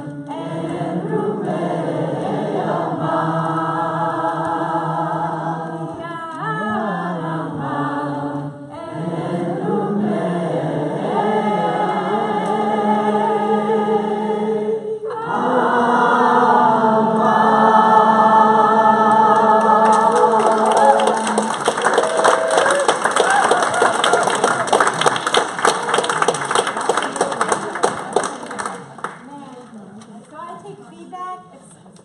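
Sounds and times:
group singing wordless melody: 0.0 - 22.0
hand clapping: 19.7 - 29.6.

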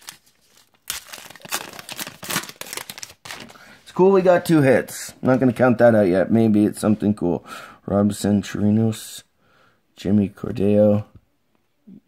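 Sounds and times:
wrapper tearing and crinkling: 0.0 - 3.6.

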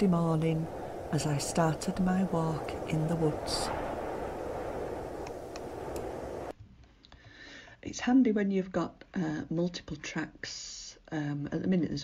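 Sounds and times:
windy hiss: 0.0 - 6.6.

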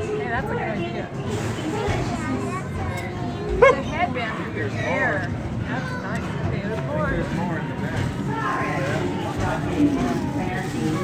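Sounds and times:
chatter of children and adults: 0.0 - 11.0.

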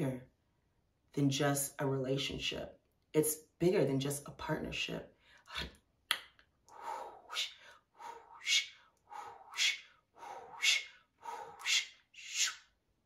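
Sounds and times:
woman whispered hissing: 7.0 - 7.7, 8.4 - 12.7.

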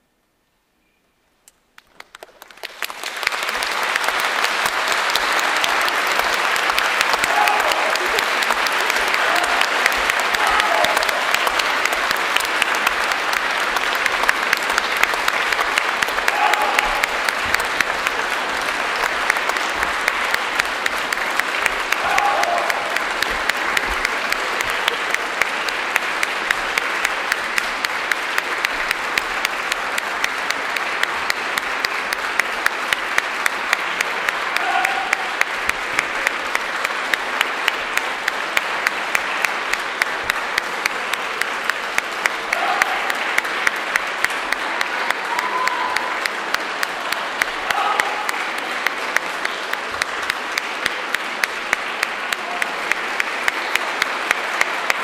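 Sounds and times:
audience applauding: 1.7 - 55.0.

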